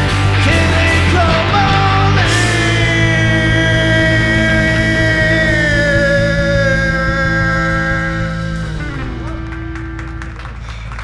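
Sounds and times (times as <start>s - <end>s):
rock band sustained chord: 0.0s - 11.0s
singer holding long note: 0.4s - 9.6s.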